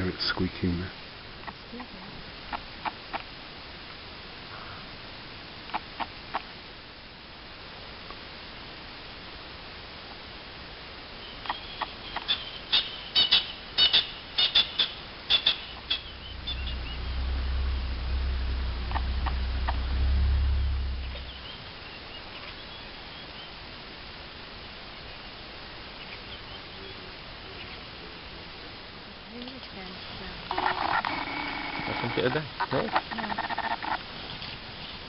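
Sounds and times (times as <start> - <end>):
low rumble: 15.0 - 22.1.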